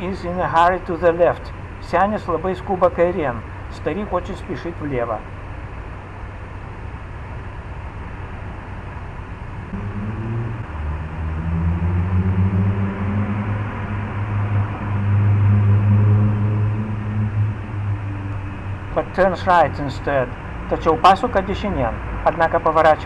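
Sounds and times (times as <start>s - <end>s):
car engine humming: 0.0s - 23.0s
street noise: 0.0s - 23.0s.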